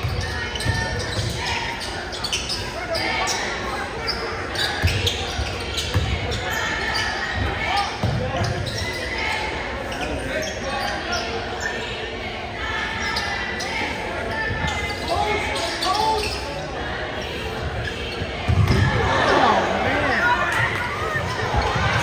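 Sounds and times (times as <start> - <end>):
players calling out: 0.0 - 22.0.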